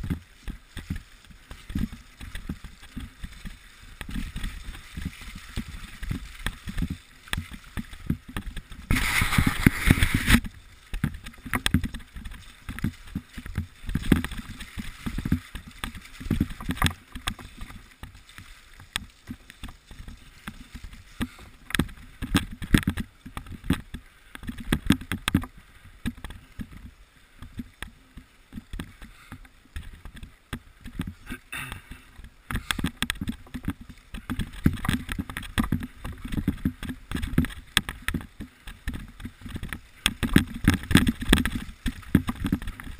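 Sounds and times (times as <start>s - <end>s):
bike tyres splashing through mud: 0.0s - 26.8s, 28.7s - 42.9s
bike rattling over bumps: 0.0s - 27.7s, 28.5s - 42.9s.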